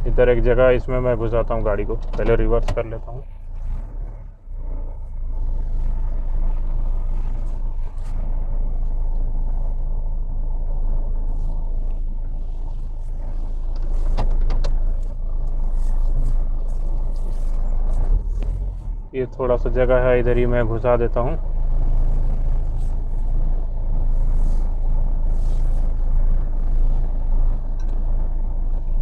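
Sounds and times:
car engine running at low revs: 0.0 - 29.0.

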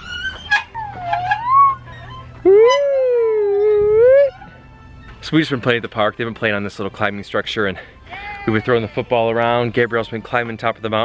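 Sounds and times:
high-pitched call: 0.3 - 4.6.

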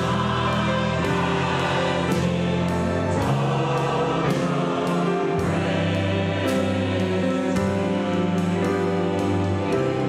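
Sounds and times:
choir singing held chords: 0.0 - 10.0
orchestra strings and brass: 0.0 - 10.0.

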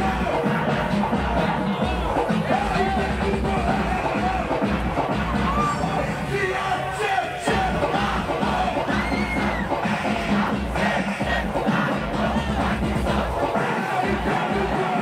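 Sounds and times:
crowd cheering and shouting: 0.0 - 15.0
funk music over sound system: 0.0 - 15.0.

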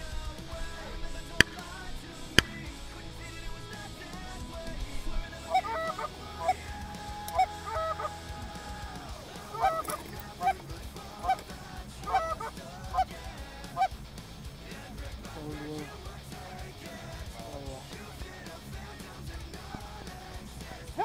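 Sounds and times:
goose call honks and clucks: 5.4 - 6.6, 7.3 - 8.2, 9.5 - 10.6, 12.0 - 13.1.

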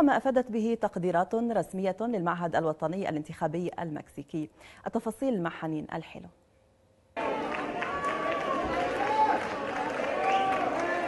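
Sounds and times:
crowd cheering and shouting: 7.2 - 11.0
people clapping: 7.2 - 11.0.

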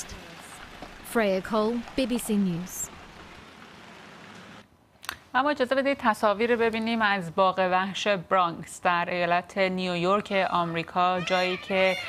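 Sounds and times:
steady rain falling: 0.0 - 4.6.

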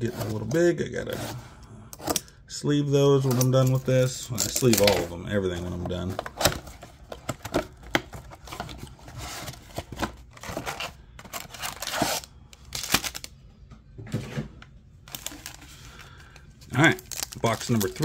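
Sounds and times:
cardboard box being opened: 6.1 - 13.2.

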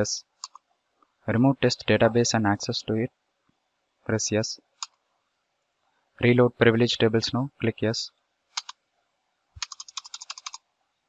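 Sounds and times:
keyboard key clicks: 9.6 - 10.6.

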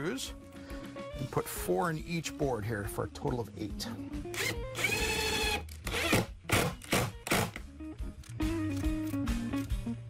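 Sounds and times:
background music: 0.0 - 10.0
cordless drill driving screws: 4.3 - 7.6.

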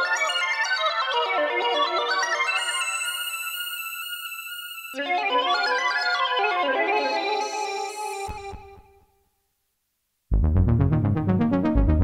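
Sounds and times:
synthesizer arpeggio: 10.3 - 12.0.

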